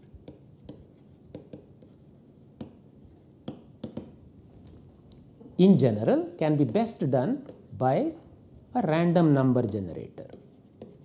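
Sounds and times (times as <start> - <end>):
pen tapping and scratching: 0.0 - 2.8, 3.4 - 4.2, 6.5 - 7.7, 9.5 - 11.0.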